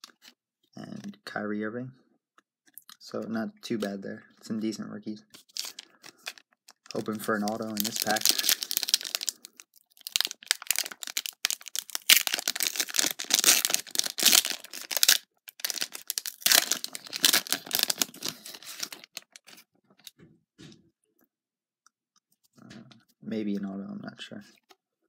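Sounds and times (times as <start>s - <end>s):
plastic wrapper tearing and crinkling: 5.4s - 20.1s.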